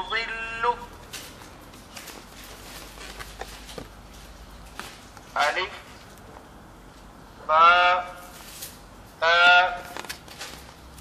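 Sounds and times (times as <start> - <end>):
electronic voice speaking syllable: 0.0 - 0.9, 7.5 - 8.2, 9.2 - 10.0.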